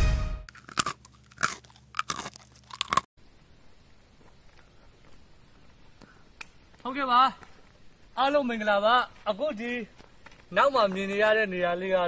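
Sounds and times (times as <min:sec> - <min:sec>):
person chewing crunchy food: 0:00.5 - 0:03.1.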